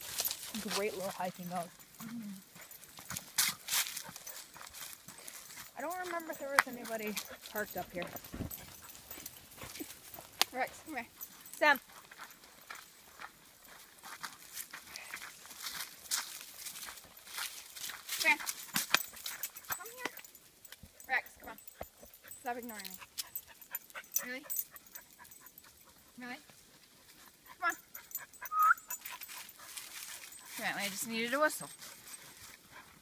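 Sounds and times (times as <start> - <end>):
person calling dogs: 0.5 - 2.6, 19.7 - 20.3, 27.5 - 29.4
footsteps crunching on gravel: 11.9 - 19.2
person whistling: 28.5 - 28.9.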